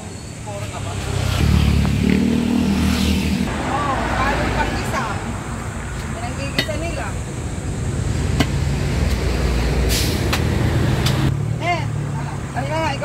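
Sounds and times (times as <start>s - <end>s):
heavy vehicle engine rumble: 2.8s - 13.0s
short hiss: 9.9s - 10.4s.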